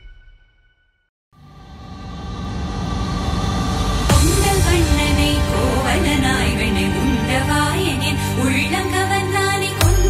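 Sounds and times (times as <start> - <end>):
cinematic riser: 1.4 - 9.3.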